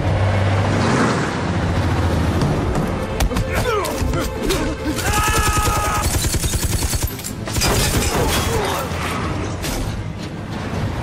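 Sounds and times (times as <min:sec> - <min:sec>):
man yelling: 0:05.0 - 0:06.1
machine gun firing bursts: 0:05.1 - 0:08.0.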